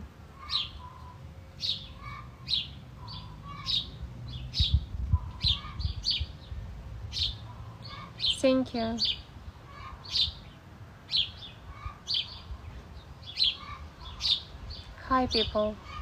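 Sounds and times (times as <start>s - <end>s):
small birds chirping: 0.4s - 16.0s.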